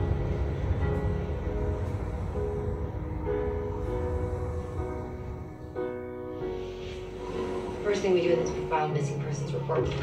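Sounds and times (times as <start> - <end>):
low sustained music: 0.0 - 10.0.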